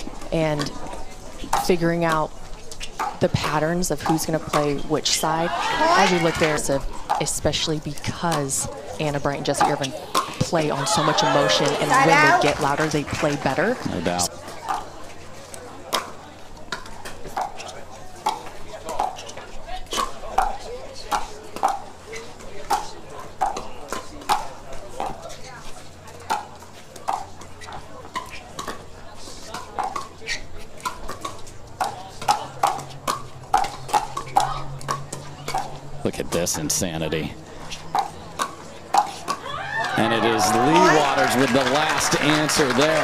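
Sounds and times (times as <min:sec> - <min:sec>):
paddles hitting plastic ball: 0:09.4 - 0:25.4, 0:26.1 - 0:36.6, 0:37.8 - 0:43.0.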